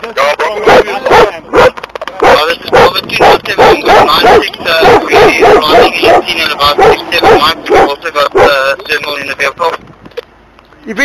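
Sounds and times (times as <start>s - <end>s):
dog barking and yelping: 0.6s - 8.6s.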